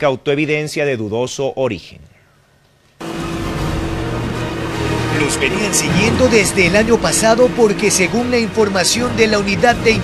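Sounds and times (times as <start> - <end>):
motorboat engine hum: 3.0 - 9.2.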